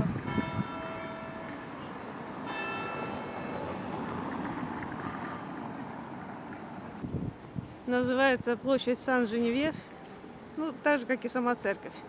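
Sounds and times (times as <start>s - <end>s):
church bell ringing: 0.0s - 3.9s
street background noise: 0.0s - 12.0s.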